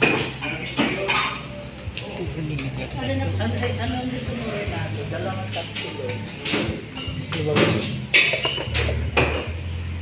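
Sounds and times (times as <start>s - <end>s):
dishes and utensils clinking: 0.0s - 1.6s, 5.2s - 9.7s.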